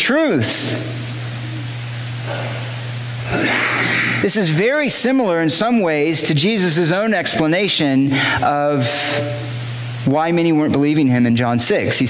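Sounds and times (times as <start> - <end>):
low even hum: 0.0 - 12.0
steady hiss: 0.0 - 12.0.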